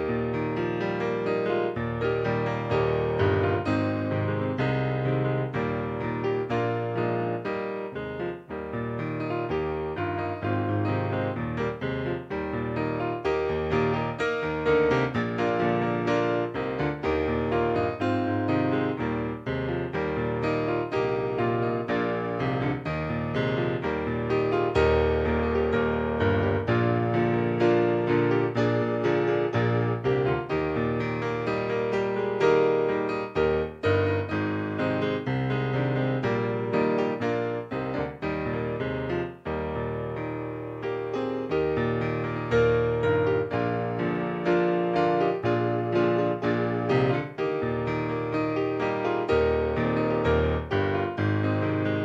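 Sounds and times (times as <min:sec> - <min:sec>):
piano music: 0:00.0 - 0:52.0.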